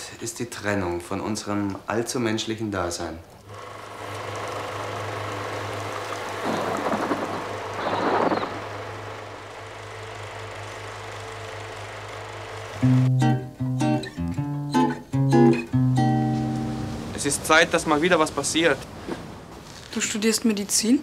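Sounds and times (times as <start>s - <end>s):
film projector running: 3.4s - 13.1s
rushing noise: 6.3s - 10.0s.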